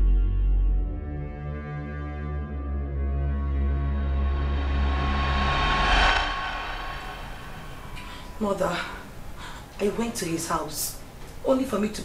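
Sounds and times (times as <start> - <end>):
low music drone: 0.0 - 8.6
rushing swell: 3.5 - 9.2.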